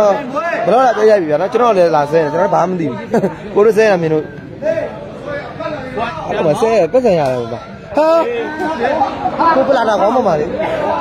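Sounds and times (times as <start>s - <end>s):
crowd chatter in echoing hall: 0.0s - 11.0s
man talking: 0.0s - 11.0s.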